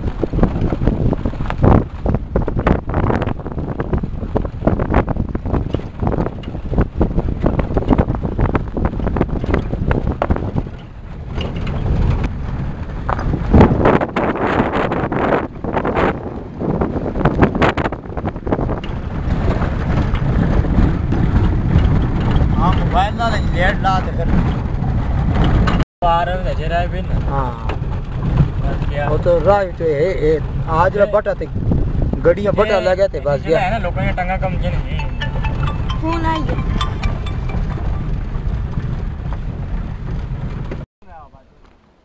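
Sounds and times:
body knocks and rattles: 0.0s - 14.5s, 15.3s - 25.8s, 27.2s - 30.9s, 34.9s - 40.9s
vehicle rumbling on gravel: 0.0s - 42.0s.

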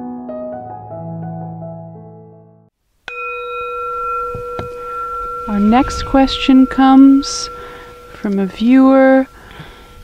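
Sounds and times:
singing bowl ringing: 3.0s - 10.0s.

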